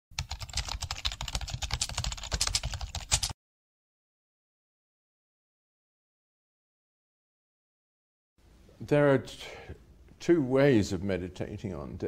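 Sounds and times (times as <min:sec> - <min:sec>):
fast computer keyboard typing: 0:00.2 - 0:03.4.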